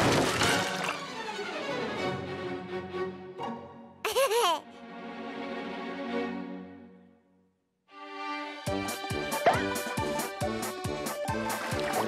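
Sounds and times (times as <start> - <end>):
soft string music: 0.9 - 7.2, 7.9 - 12.0
small child giggling: 4.1 - 4.7.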